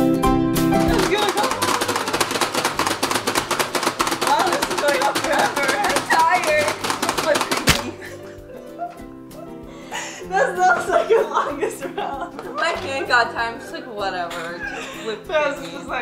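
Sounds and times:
music: 0.0s - 16.0s
spring-loaded hand smack: 6.8s - 8.1s.

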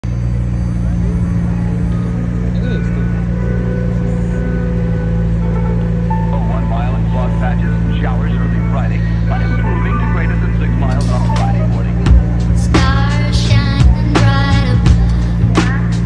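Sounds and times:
car engine idling: 0.0s - 16.0s
voices: 0.0s - 16.0s.

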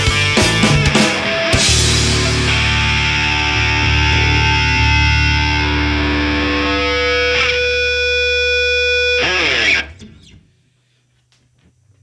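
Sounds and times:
electric guitar chords ringing: 0.0s - 10.3s
sustained bass: 0.0s - 10.5s.

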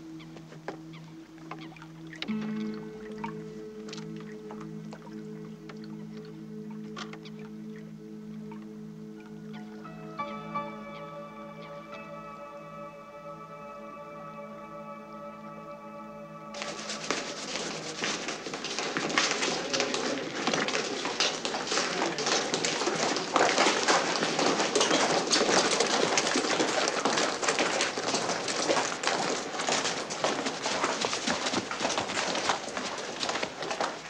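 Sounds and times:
boots on stone and gravel: 16.6s - 34.0s
knocks of handled kit: 16.6s - 34.0s.

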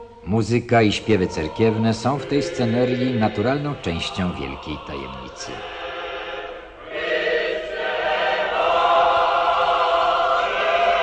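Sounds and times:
choir singing church chant: 0.0s - 11.0s.

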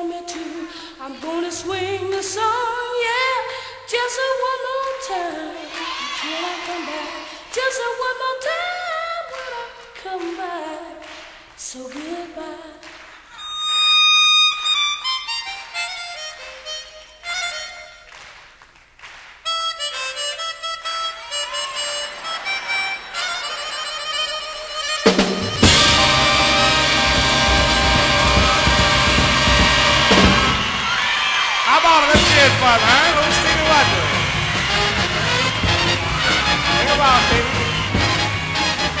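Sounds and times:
harmonica solo: 13.4s - 18.1s, 19.4s - 31.1s, 31.8s - 39.0s
full band playing: 21.0s - 39.0s.

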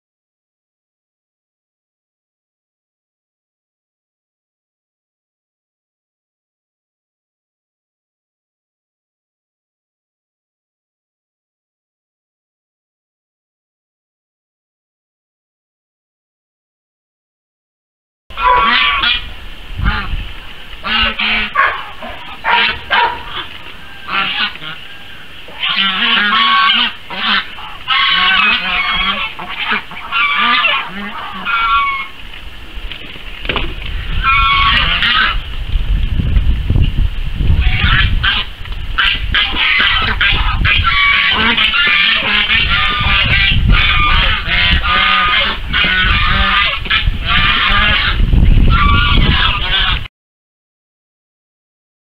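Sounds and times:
geese honking: 18.3s - 32.8s, 33.9s - 35.5s, 37.5s - 50.1s.

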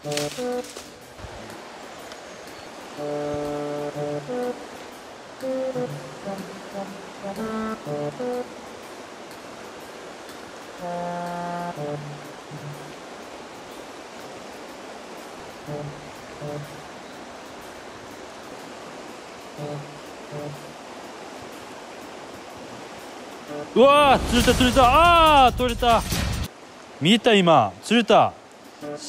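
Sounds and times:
sparse background music: 0.0s - 26.5s, 28.4s - 29.0s
river water flowing: 0.0s - 29.0s.

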